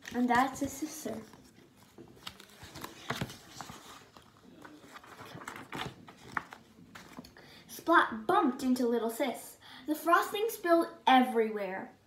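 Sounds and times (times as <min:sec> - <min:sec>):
paper rustling: 0:00.0 - 0:07.4.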